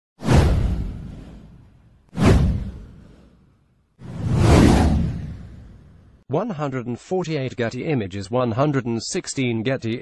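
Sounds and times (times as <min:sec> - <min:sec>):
deep whoosh: 0:00.2 - 0:06.2.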